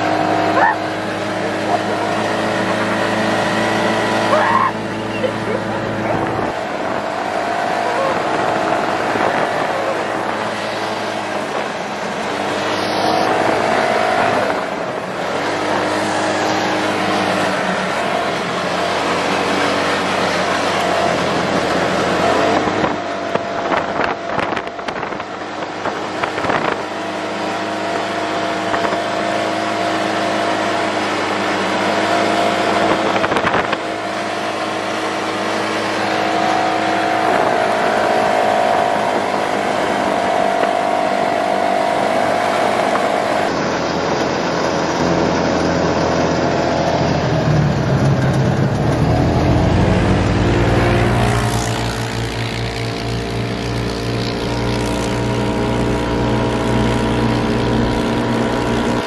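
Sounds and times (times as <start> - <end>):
utility vehicle engine running: 0.0 - 59.0.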